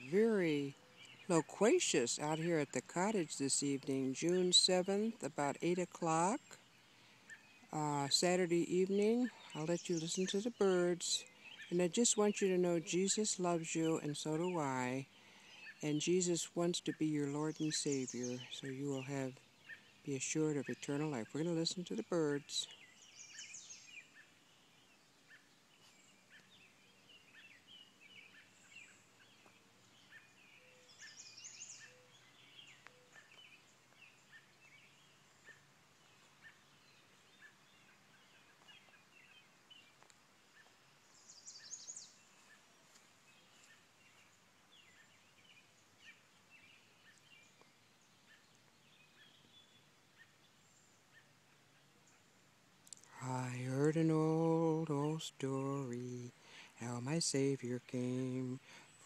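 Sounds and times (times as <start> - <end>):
birds chirping and singing: 0.0 - 52.3, 52.9 - 59.0.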